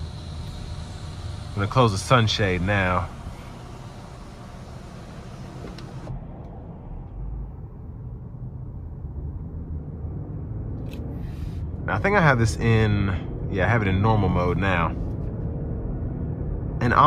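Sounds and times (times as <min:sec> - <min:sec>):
high hiss: 0:00.0 - 0:06.1
car cabin road rumble: 0:00.0 - 0:17.0.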